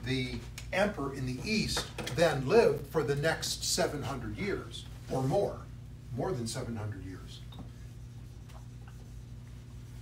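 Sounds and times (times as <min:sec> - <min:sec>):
steady low hum: 0:00.0 - 0:10.0
marker writing on whiteboard: 0:08.0 - 0:09.7.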